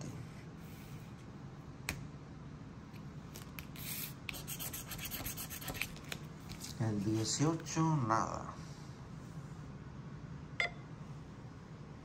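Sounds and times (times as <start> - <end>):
scratching lottery ticket: 3.8 - 6.0.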